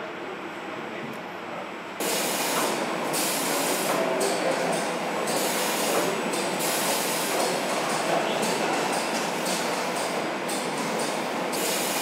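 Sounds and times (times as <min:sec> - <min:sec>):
paint sprayer hissing: 0:02.0 - 0:04.0.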